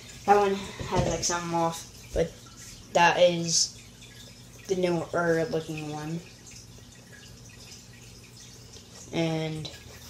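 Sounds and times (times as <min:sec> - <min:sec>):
person speaking: 0:00.2 - 0:02.3.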